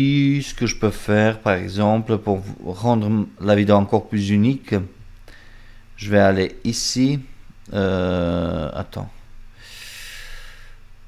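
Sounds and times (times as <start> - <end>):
faint steady hum: 0.0 - 11.0
man breathing out: 5.2 - 5.9, 9.6 - 10.9.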